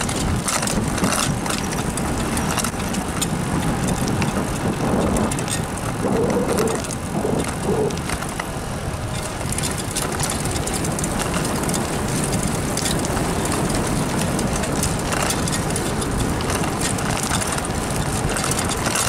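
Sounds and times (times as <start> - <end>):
bicycle clicks and rattles: 0.0 - 19.0
tyres on pavement: 0.0 - 19.0
wind on microphone: 0.0 - 19.0.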